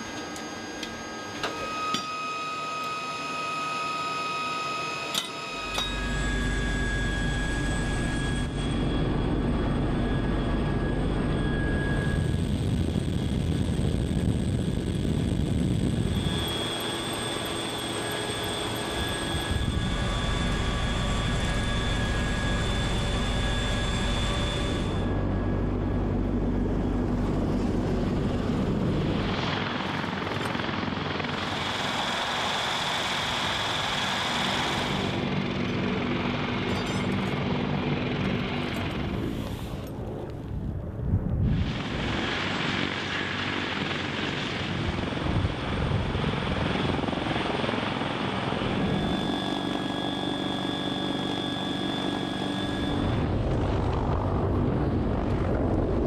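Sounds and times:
helicopter rotor and engine: 0:00.0 - 0:56.0
high turbine whine: 0:00.0 - 0:56.0.

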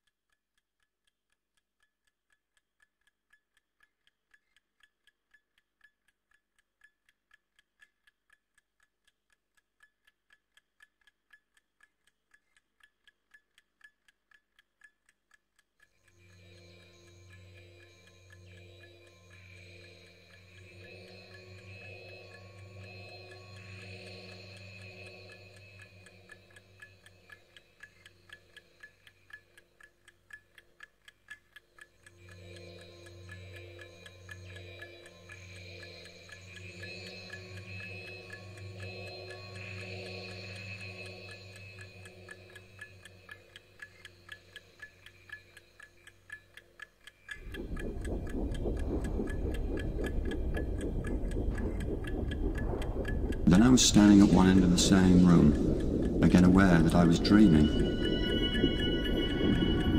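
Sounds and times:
clock-like ticking: 0:00.0 - 0:59.9
synthesizer drones: 0:16.2 - 0:27.1, 0:32.1 - 0:43.0, 0:47.4 - 0:59.9
low rushing noise: 0:47.4 - 0:59.9.

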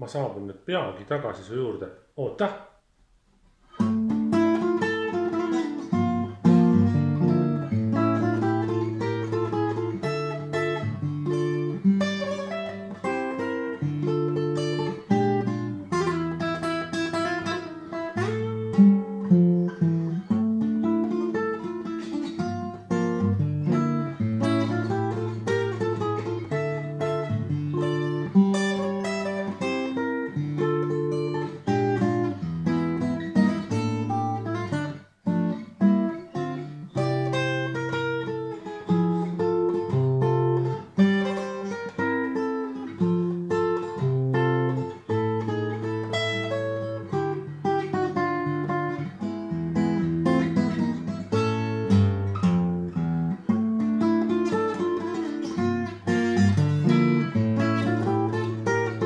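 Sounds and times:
fingerstyle acoustic guitar: 0:03.4 - 0:59.0.

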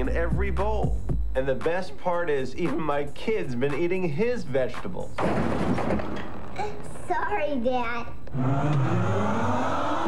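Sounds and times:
rising pitched tones: 0:08.3 - 0:10.0.

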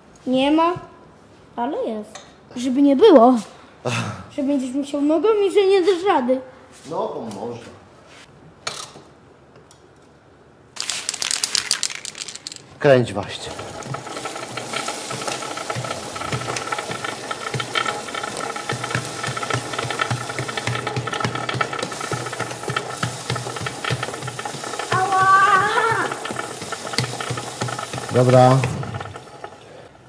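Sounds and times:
chain and sprocket rattling: 0:10.8 - 0:12.8
aerosol spray hissing: 0:21.8 - 0:28.8.

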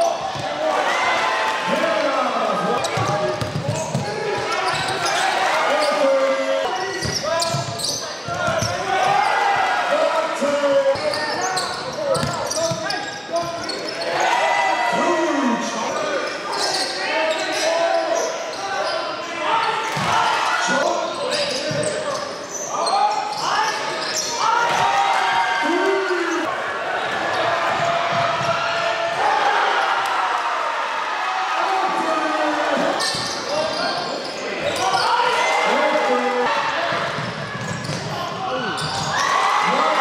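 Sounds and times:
basketball bouncing on court: 0:02.8 - 0:04.9, 0:07.0 - 0:08.8, 0:12.2 - 0:12.9
basketball bouncing on wood floor: 0:02.9 - 0:04.1.

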